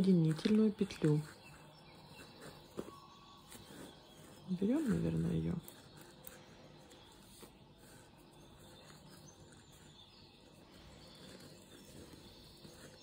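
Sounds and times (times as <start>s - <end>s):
faint yarn rustling: 0.0s - 13.0s.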